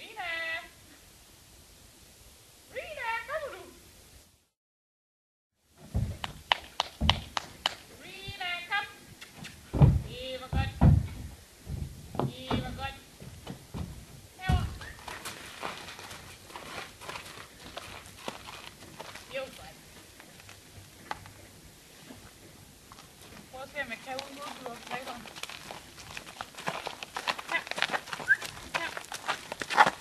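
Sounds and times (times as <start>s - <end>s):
hooves knocking on trailer ramp: 5.8s - 8.5s, 9.5s - 21.4s
short wavering calls: 28.2s - 28.6s.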